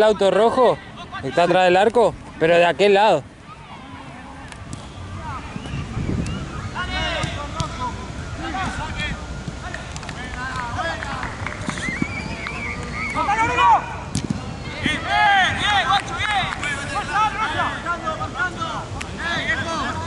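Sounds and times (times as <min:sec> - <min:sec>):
football players shouting: 0:14.8 - 0:20.0.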